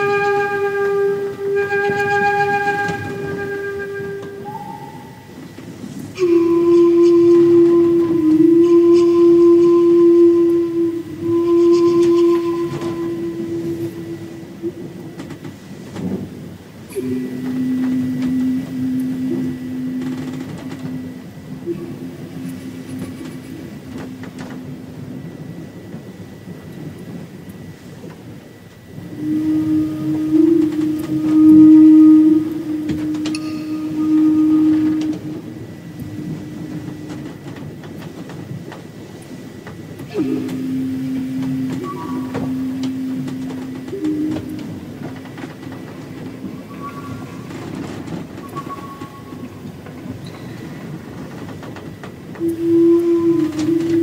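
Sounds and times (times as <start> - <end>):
breathy hiss: 0.0 - 54.0
low flute long notes: 0.0 - 54.0.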